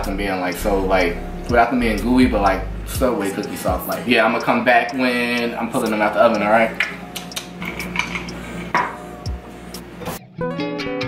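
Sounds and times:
kitchen items clinking on countertop: 0:07.6 - 0:09.0.

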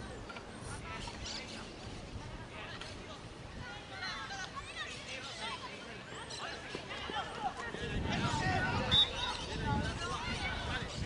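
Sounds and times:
distant shouts and calls: 0:03.6 - 0:11.0.

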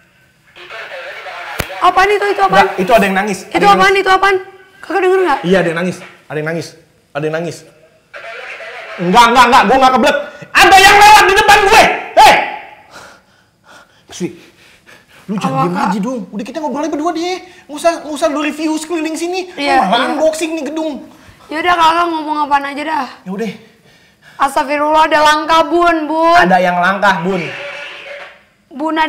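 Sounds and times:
person asking a question: 0:15.3 - 0:16.3.

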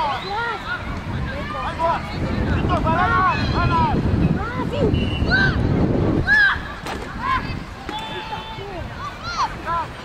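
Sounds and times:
voices calling out: 0:00.0 - 0:10.0
wind rumble on microphone: 0:00.0 - 0:10.0.

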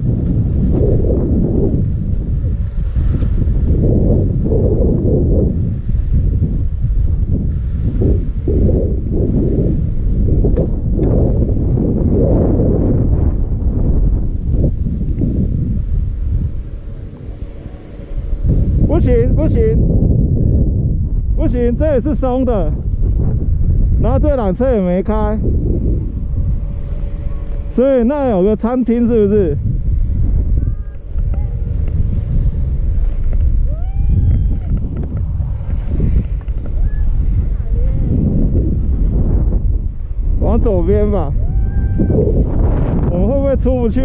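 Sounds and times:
wind buffeting microphone: 0:00.0 - 0:44.0
skis sliding over snow: 0:02.5 - 0:04.0, 0:31.0 - 0:33.9, 0:34.6 - 0:38.1.

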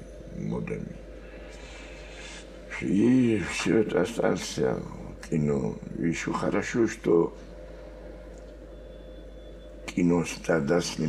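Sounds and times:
low electrical hum: 0:00.0 - 0:11.0
man speaking: 0:00.3 - 0:01.0, 0:02.7 - 0:07.4, 0:09.9 - 0:11.0.

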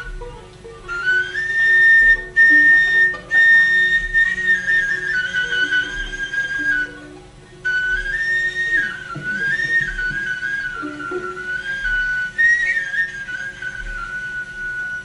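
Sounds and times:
reed flute melody: 0:00.0 - 0:15.0.

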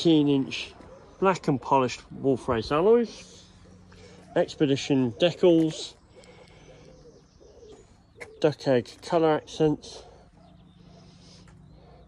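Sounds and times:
bird cooing: 0:03.2 - 0:08.7.

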